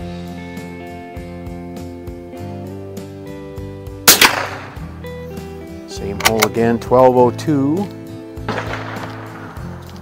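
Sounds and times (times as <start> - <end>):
background music: 0.0 - 10.0
rifle shot crack: 4.0 - 5.0, 8.5 - 9.8.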